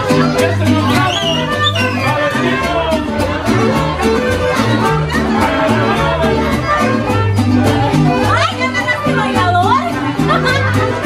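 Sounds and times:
excited voices calling out: 0.0s - 11.0s
mariachi band playing: 0.0s - 11.0s.

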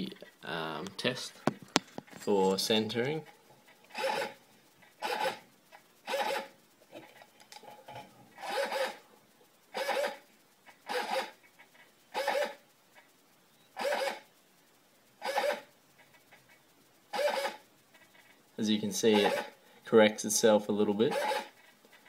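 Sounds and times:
servo motor whining: 3.9s - 4.4s, 5.0s - 5.4s, 6.1s - 6.5s, 8.4s - 9.0s, 9.7s - 10.2s, 10.9s - 11.4s, 12.2s - 12.6s, 13.8s - 14.2s, 15.2s - 15.7s, 17.1s - 17.6s, 19.2s - 19.5s, 21.1s - 21.6s.

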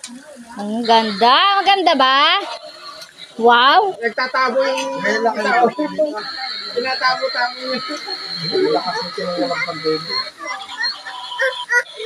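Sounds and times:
people talking: 0.0s - 12.0s
steady high-pitched whine: 0.0s - 12.0s.

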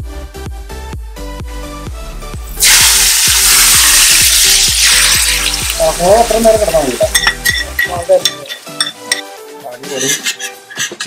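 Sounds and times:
hot oil sizzling loudly: 2.4s - 7.7s.

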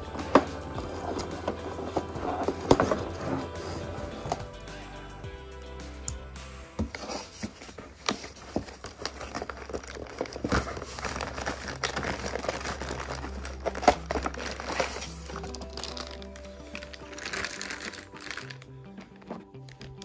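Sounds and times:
background music with stepping notes: 0.0s - 7.6s
cardboard rustling: 0.2s - 4.5s, 6.8s - 20.0s
plastic bag crinkling: 6.9s - 20.0s.

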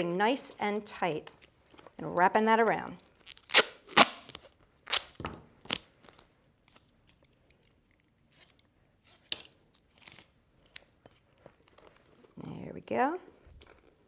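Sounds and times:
tape rustling and clicking: 3.0s - 12.4s
duct tape ripping: 3.1s - 6.9s.

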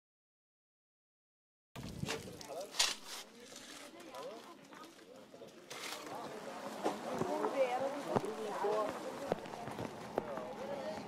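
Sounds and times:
people talking indistinctly: 2.1s - 11.0s.

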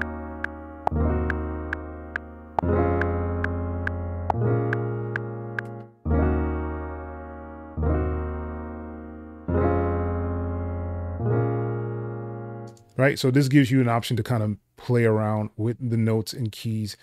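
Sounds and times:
strummed piano-like chords: 0.0s - 12.8s.

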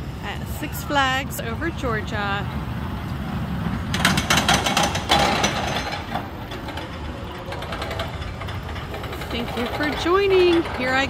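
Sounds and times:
roller coaster rattling on track: 0.0s - 11.0s.

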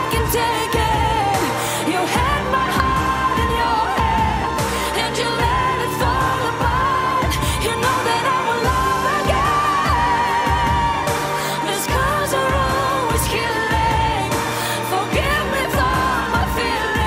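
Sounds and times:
full band backing: 0.0s - 17.0s.

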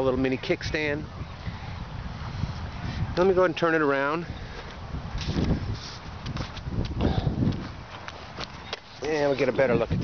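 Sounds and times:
footsteps on dry grass and leaves: 4.6s - 9.5s.

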